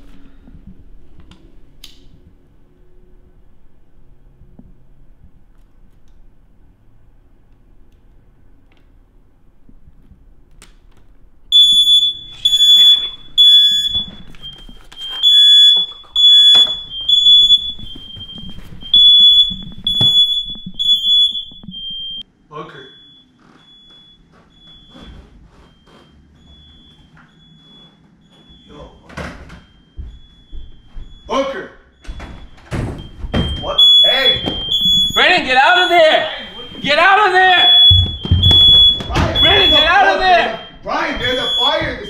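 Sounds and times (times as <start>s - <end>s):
smoke alarm beeping: 11.5s - 42.0s.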